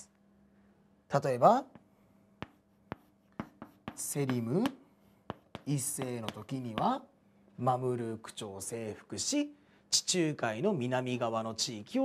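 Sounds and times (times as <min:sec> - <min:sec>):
chalk tapping on blackboard: 0:01.7 - 0:07.0.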